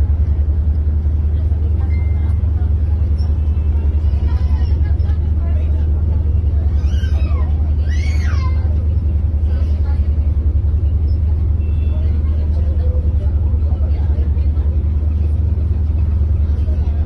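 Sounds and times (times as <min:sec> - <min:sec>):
ferry engines droning: 0:00.0 - 0:17.0.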